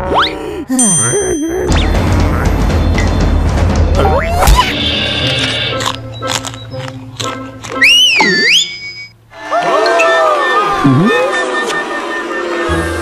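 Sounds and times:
cartoon music: 0.0 - 13.0
cartoon character laughing: 0.7 - 1.8
wavering whistle: 7.8 - 13.0.

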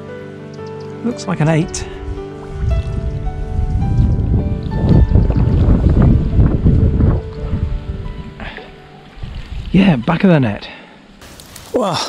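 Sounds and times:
music with long held notes: 0.0 - 10.2.

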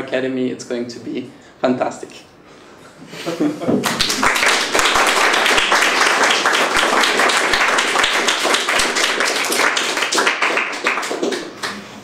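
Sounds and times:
audience applauding: 3.8 - 11.8.

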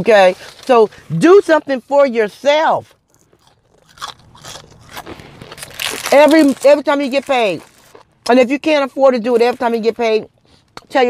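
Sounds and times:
chewing crunchy fries: 2.8 - 8.6.

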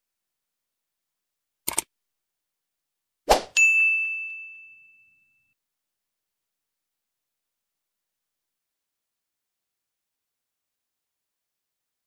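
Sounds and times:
sharp clicks: 1.7 - 1.9
bell ding: 3.6 - 5.6.

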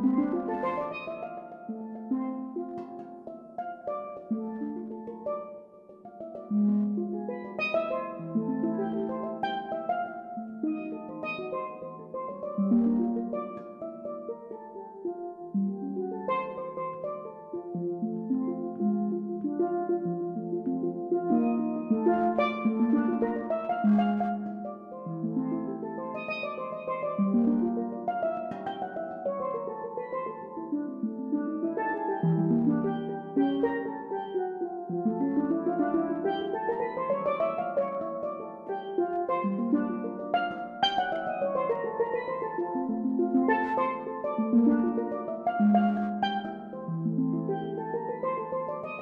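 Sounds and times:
steelpan melody: 0.0 - 49.0
steel pans playing jazz: 21.1 - 30.4, 35.1 - 49.0.

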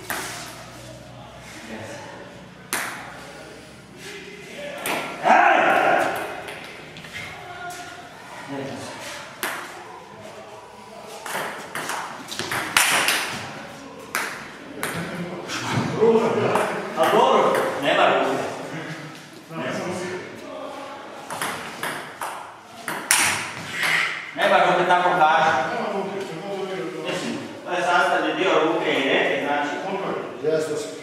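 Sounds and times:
people talking in a hall: 0.0 - 31.0.

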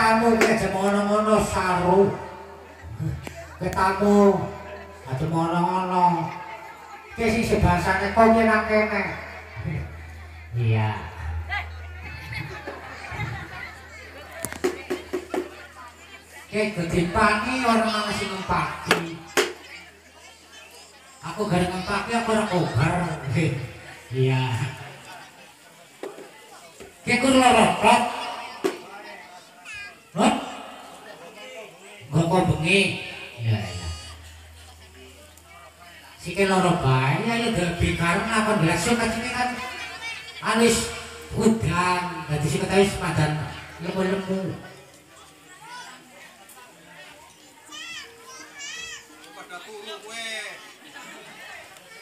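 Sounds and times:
spectators calling out and chattering: 0.0 - 52.0.

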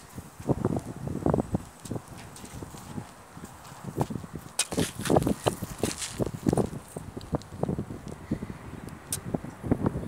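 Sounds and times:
knocks and scuffs on stony ground: 0.0 - 7.7.

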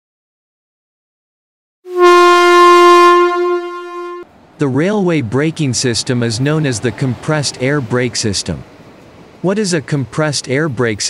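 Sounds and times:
locomotive air horn blast: 1.9 - 4.3.

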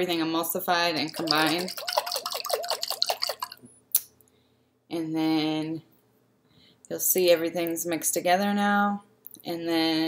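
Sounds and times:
liquid sloshing in a jar: 1.0 - 3.7.

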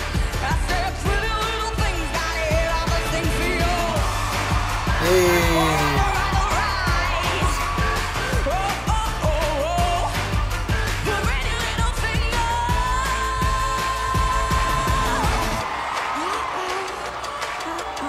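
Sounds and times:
drums steady beat: 0.1 - 15.6.

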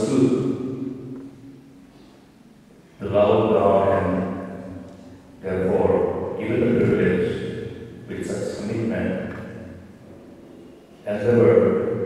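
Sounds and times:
man chanting: 3.0 - 4.3, 5.4 - 7.5, 8.1 - 9.5, 11.1 - 11.8.

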